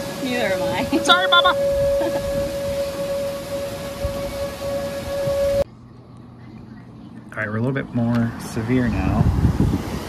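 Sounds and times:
heavy rain pouring: 0:00.0 - 0:05.6
distant warning siren: 0:00.0 - 0:05.7
low hum: 0:00.0 - 0:07.4.

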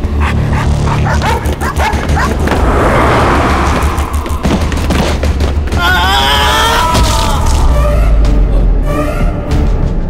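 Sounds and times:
low droning music: 0:00.0 - 0:10.0.

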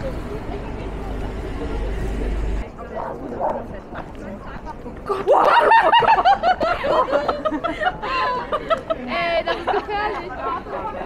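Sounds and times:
low traffic rumble: 0:00.0 - 0:11.0
street hubbub: 0:00.0 - 0:11.0
woman laughing: 0:05.1 - 0:11.0.

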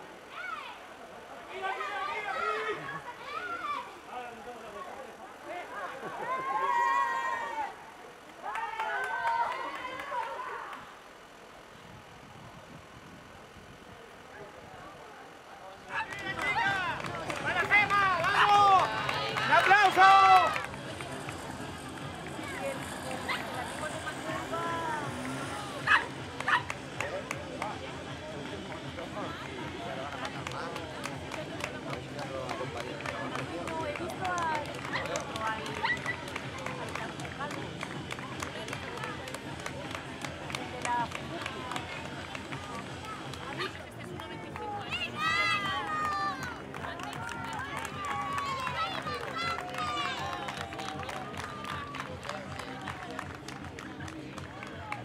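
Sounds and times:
spectators' voices: 0:00.0 - 0:55.0
loud shouting: 0:05.6 - 0:07.8, 0:15.9 - 0:27.4, 0:44.6 - 0:52.1.

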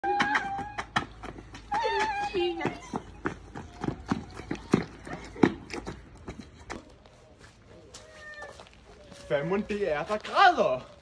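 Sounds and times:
shoes scuffing on brick paving: 0:00.1 - 0:11.0.

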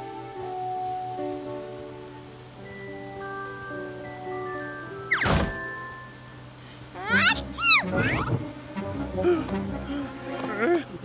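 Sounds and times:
soft background music: 0:00.0 - 0:11.0
cartoon thump: 0:05.2 - 0:05.6
cartoon falling glide: 0:07.0 - 0:08.4.

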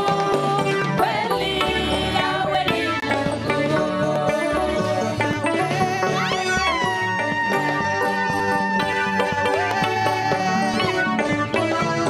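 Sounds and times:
band accompaniment with steady beat: 0:00.0 - 0:12.0.

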